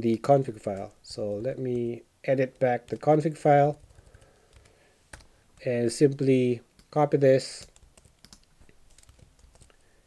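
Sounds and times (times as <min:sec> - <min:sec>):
computer keys clicking: 0:02.6 - 0:06.2, 0:06.8 - 0:09.9.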